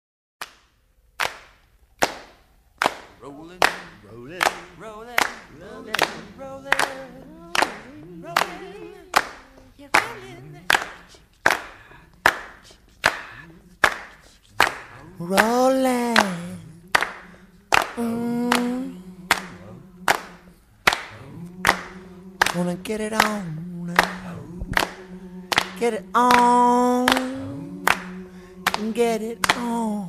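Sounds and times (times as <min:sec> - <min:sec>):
sharp hand claps with reverb: 0:00.4 - 0:07.0, 0:07.6 - 0:09.4, 0:10.0 - 0:15.6, 0:16.2 - 0:23.4, 0:24.0 - 0:26.5, 0:27.1 - 0:29.8
faint sung voice: 0:03.2 - 0:30.0.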